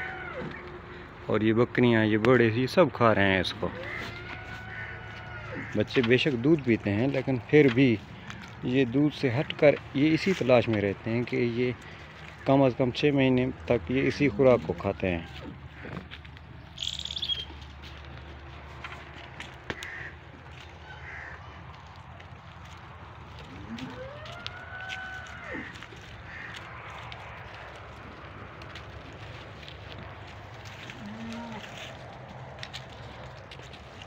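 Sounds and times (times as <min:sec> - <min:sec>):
goat bleating: 0:00.0 - 0:01.1, 0:03.3 - 0:08.6, 0:22.6 - 0:33.7
goats browsing dry twigs: 0:00.0 - 0:34.0
bird high-pitched trill: 0:16.8 - 0:17.6.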